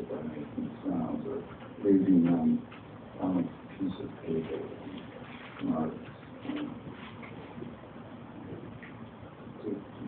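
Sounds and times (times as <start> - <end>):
bar room murmur: 0.0 - 10.0.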